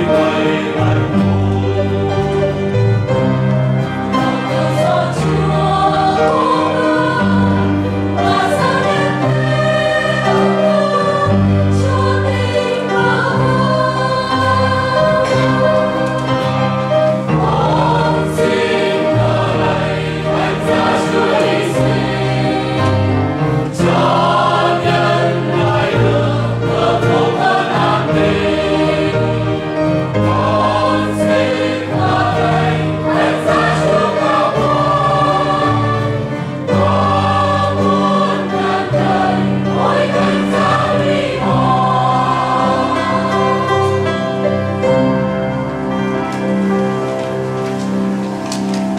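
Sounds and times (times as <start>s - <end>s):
choir singing a hymn: 0.0s - 47.1s
guitar: 0.0s - 48.9s
piano: 0.0s - 48.9s.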